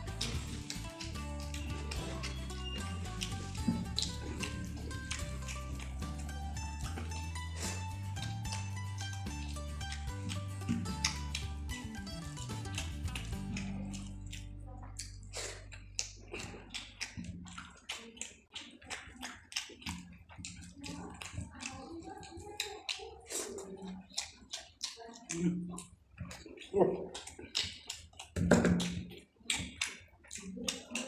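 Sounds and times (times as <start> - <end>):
fingers working rice on plate: 0.0 - 14.5
background music: 0.0 - 14.6
wet chewing clicks and smacks: 0.0 - 31.0.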